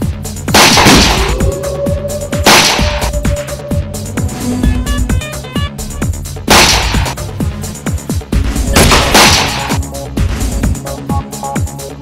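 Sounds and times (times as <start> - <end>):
dramatic film music: 0.0 - 12.0
echoing gunshots: 0.5 - 1.5, 2.3 - 3.1, 6.5 - 7.2, 8.8 - 9.8.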